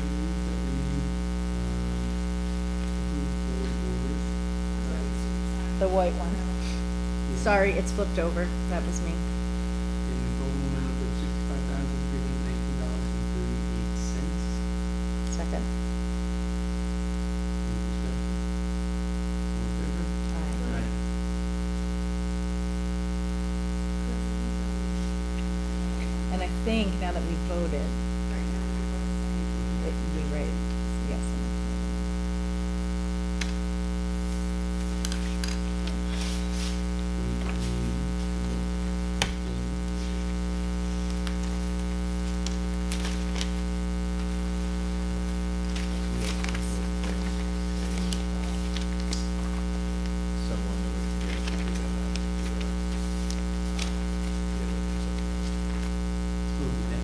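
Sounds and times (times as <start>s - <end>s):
electrical mains hum: 0.0s - 57.0s
paper rustling: 34.3s - 38.6s, 39.2s - 44.4s, 45.6s - 49.7s, 51.0s - 55.9s.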